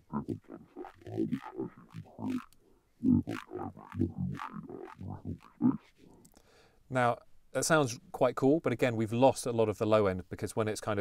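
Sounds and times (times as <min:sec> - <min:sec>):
growling distorted bass: 0:00.0 - 0:05.8.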